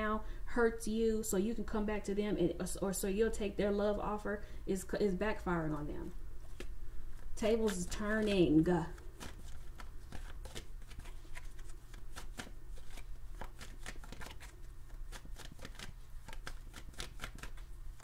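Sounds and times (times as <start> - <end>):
low steady hum: 0.0 - 18.0
cards being shuffled: 6.4 - 18.0.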